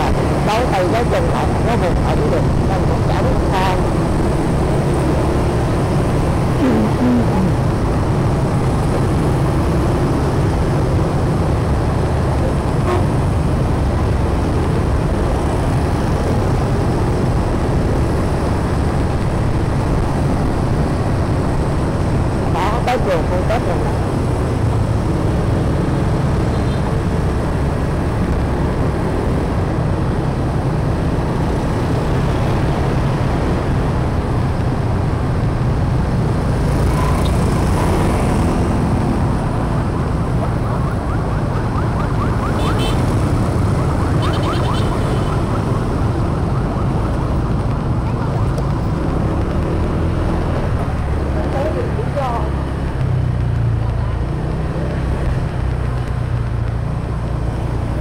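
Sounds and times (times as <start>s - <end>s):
motorbike engine and road rumble: 0.0s - 58.0s
brief pitched sound: 6.6s - 7.6s.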